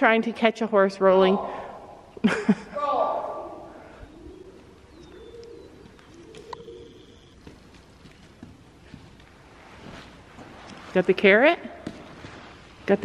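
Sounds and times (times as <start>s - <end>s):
bird cooing softly: 3.4s - 8.4s
high bird chirp: 3.9s - 8.2s.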